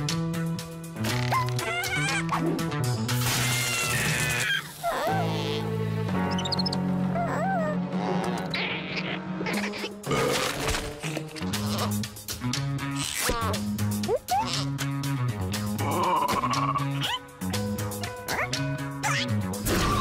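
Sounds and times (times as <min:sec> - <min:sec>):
cartoon background music: 0:00.0 - 0:20.0
squeaky creature chirps: 0:03.3 - 0:05.6.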